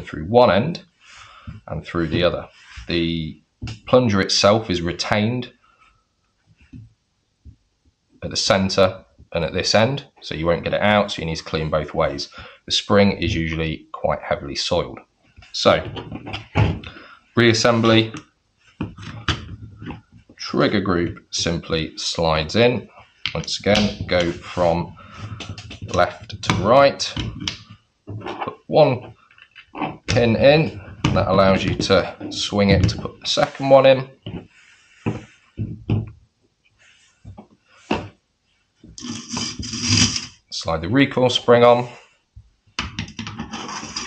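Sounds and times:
spring scraping over metal tube: 0:39.0 - 0:40.4, 0:43.4 - 0:44.0.

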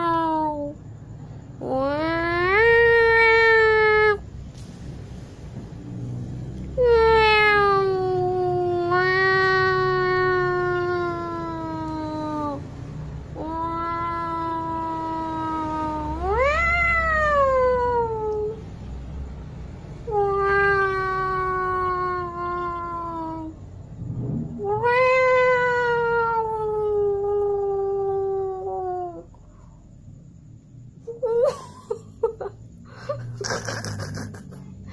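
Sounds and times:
cat yowling: 0:00.0 - 0:00.8, 0:01.6 - 0:04.2, 0:06.8 - 0:12.7, 0:13.3 - 0:18.6, 0:20.0 - 0:23.6, 0:24.5 - 0:29.4.

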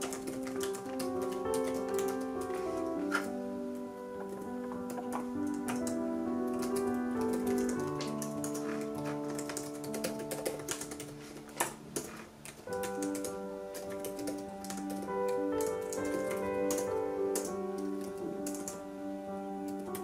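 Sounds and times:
soft piano music: 0:00.0 - 0:20.0.

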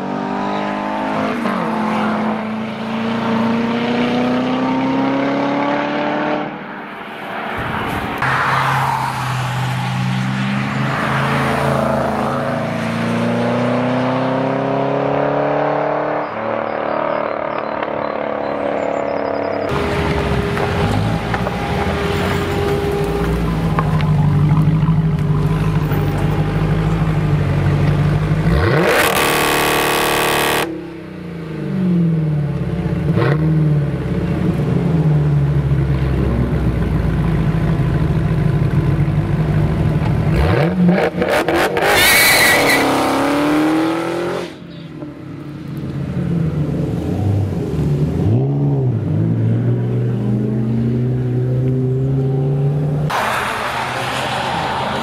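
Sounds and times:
car engine idling and revving: 0:00.0 - 0:55.0.

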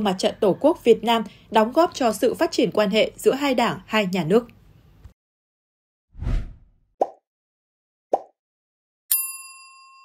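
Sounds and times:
short whoosh: 0:06.2 - 0:06.8.

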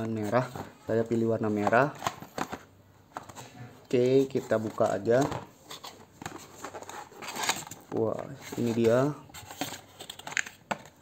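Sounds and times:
cardboard packaging rustling: 0:00.0 - 0:11.0.

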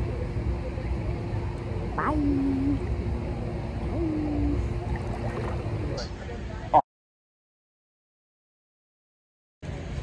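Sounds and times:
steady hum: 0:00.0 - 0:06.8.

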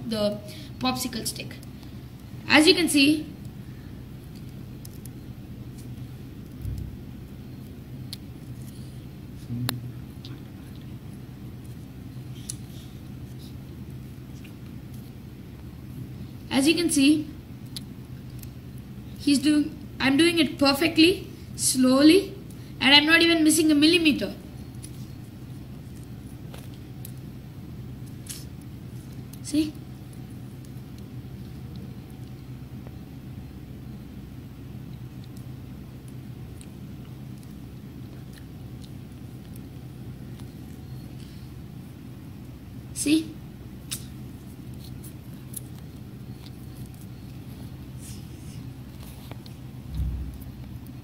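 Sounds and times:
low background hum: 0:00.0 - 0:51.0.

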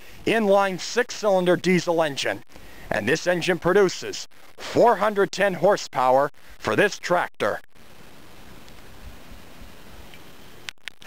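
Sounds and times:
faint outdoor background hiss: 0:00.0 - 0:11.0
faint ticks: 0:08.4 - 0:11.0.

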